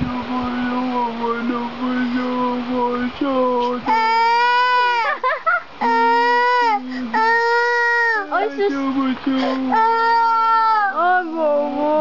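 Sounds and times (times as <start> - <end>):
toddler girl crying: 3.9 - 8.6, 9.4 - 11.0.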